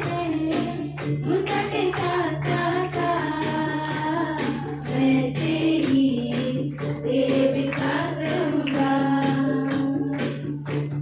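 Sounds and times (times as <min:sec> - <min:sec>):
women singing devotional song: 0:00.0 - 0:10.8.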